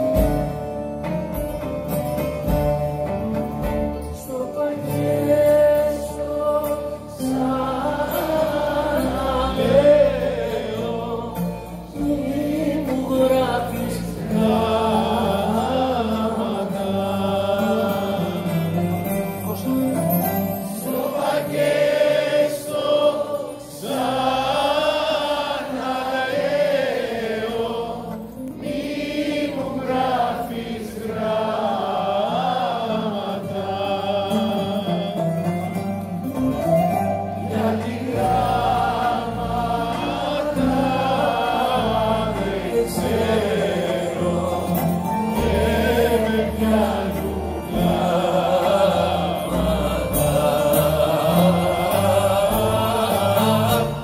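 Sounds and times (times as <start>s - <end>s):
guitar and plucked strings: 0.0s - 54.0s
person singing with choir: 3.0s - 35.8s, 36.9s - 54.0s.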